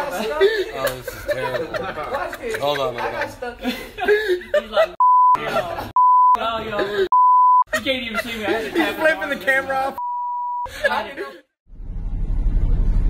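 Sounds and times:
people talking: 0.0s - 7.1s, 7.7s - 10.0s
censor bleeps: 5.0s - 5.4s, 6.0s - 6.4s, 7.1s - 7.7s, 10.0s - 10.7s.

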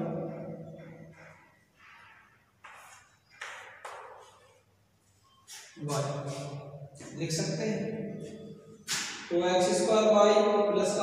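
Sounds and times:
man speaking: 5.8s - 8.1s, 9.3s - 11.0s.

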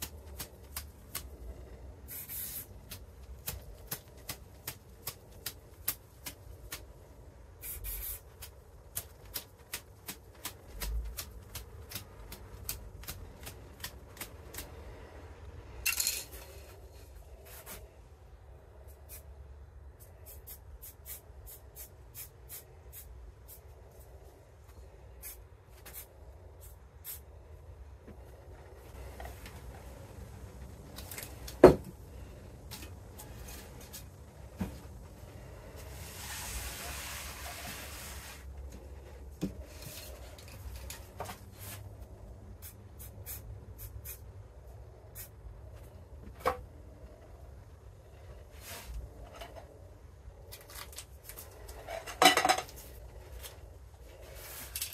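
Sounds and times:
aerosol spray can hissing: 2.1s - 2.7s.

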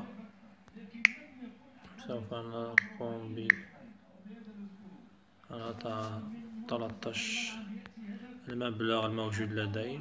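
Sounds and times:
finger tapping touchscreen: 2.8s - 3.7s.

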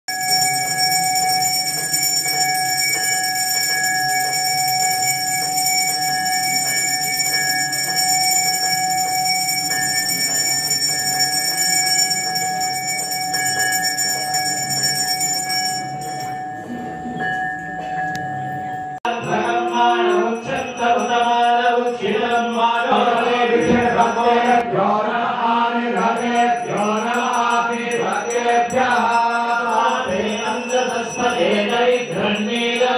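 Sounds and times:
temple bells ringing: 0.1s - 24.6s.

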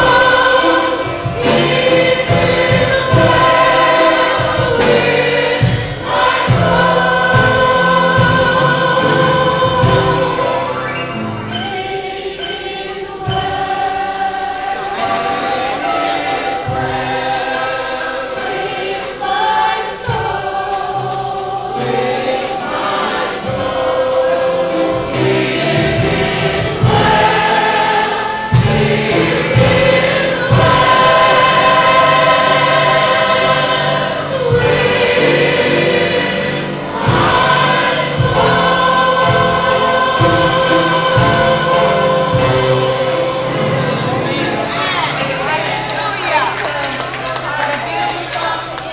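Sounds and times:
church band with drums and bass: 0.0s - 48.9s
voices singing along: 0.0s - 48.9s.

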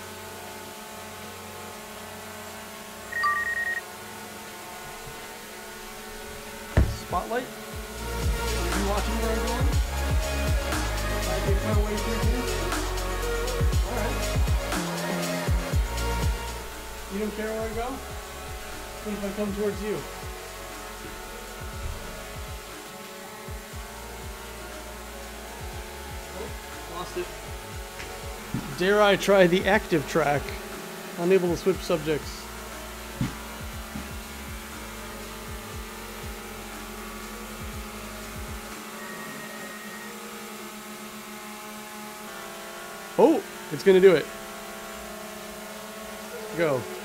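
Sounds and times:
drone propellers humming: 0.0s - 47.0s
short electronic beeps: 3.1s - 3.9s
background music with a beat: 7.7s - 28.9s, 32.5s - 39.0s.

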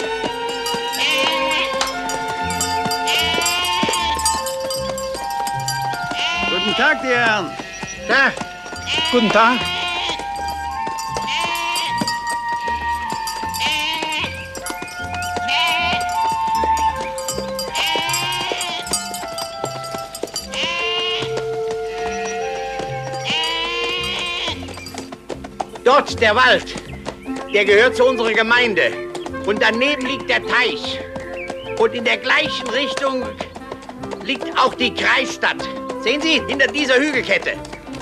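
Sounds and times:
sheep bleating: 0.0s - 4.6s, 5.9s - 16.8s, 17.6s - 19.6s, 20.5s - 24.9s
film music with held notes: 0.0s - 38.0s.

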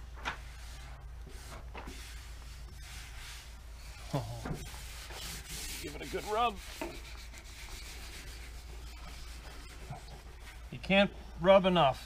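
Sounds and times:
squeegee scraping over tape: 0.4s - 10.9s.

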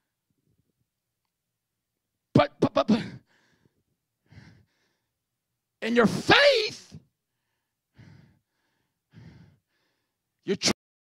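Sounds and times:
man breathing into microphone: 7.3s - 10.2s.

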